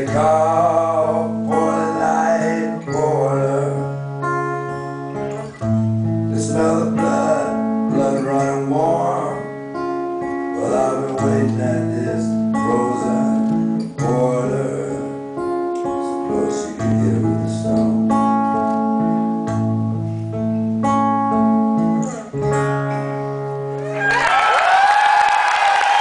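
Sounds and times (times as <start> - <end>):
guitar chords ringing: 0.0 - 24.0
audience cheering: 23.8 - 26.0.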